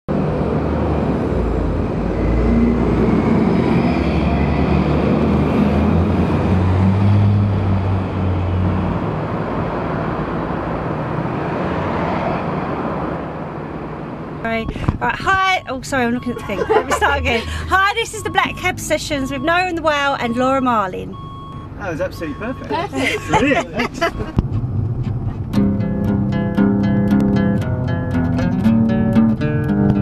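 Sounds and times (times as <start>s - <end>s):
road traffic rumble: 0.1s - 30.0s
vehicle engine hum: 0.1s - 30.0s.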